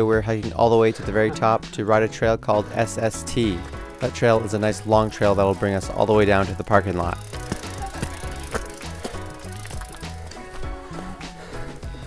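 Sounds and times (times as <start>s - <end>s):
background music with bass line: 0.0s - 12.0s
mountain bike rattling over rocks: 3.4s - 10.3s.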